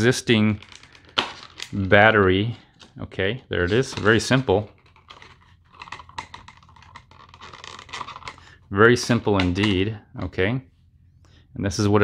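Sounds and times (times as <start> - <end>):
plastic packaging crinkling: 0.5 - 2.0, 3.7 - 8.6.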